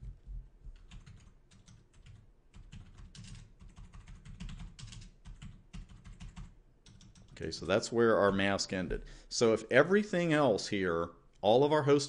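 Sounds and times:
computer keyboard typing: 0:00.0 - 0:07.4.

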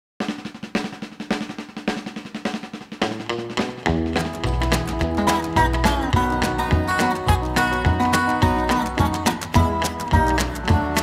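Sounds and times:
snare drum beat: 0:00.2 - 0:11.0
guitar notes: 0:03.2 - 0:11.0
bass notes: 0:03.3 - 0:11.0.

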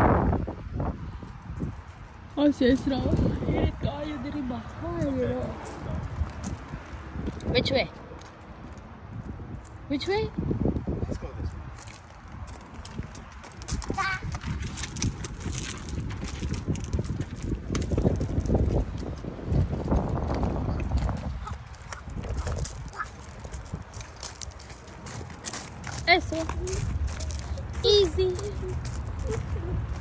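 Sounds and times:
footsteps on gravel: 0:01.2 - 0:09.8, 0:11.4 - 0:30.0.

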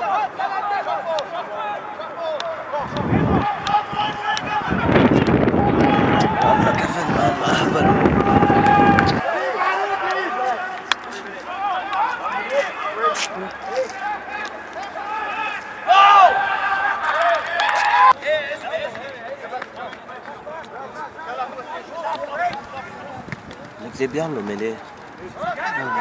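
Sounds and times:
people shouting and calling out: 0:00.0 - 0:26.0.

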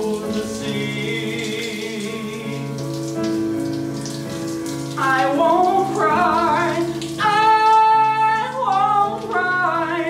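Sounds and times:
shower water spraying on tiles: 0:00.0 - 0:10.0.

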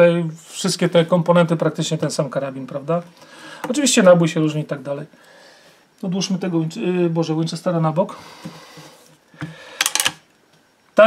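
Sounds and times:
rifle action metallic clicks: 0:09.8 - 0:10.2.

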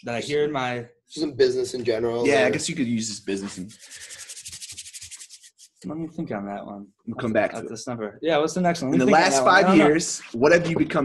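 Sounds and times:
hands rubbing together: 0:03.1 - 0:05.8.

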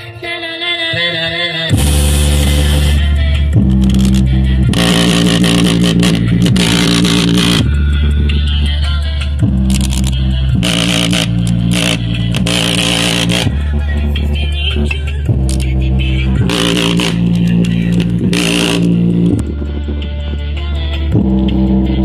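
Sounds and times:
bass-heavy music from speaker: 0:00.0 - 0:22.0.

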